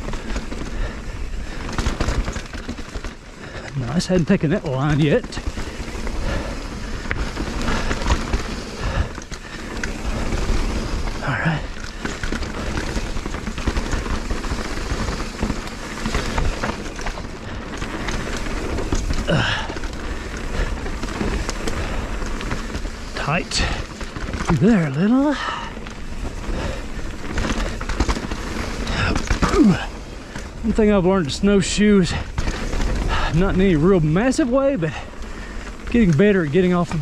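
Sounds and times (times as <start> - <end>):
bike rattling and knocking: 0.0 - 37.0
bike tyres rumbling on dirt: 0.0 - 37.0.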